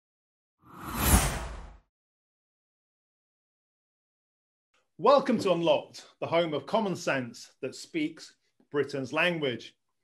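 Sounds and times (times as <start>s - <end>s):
whoosh sound effect: 0.7s - 1.8s.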